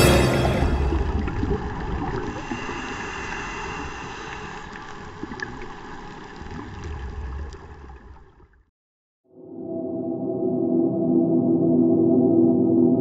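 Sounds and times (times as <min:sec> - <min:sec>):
muffled underwater rushing water: 0:00.0 - 0:08.7
faint clicks underwater: 0:04.2 - 0:08.5.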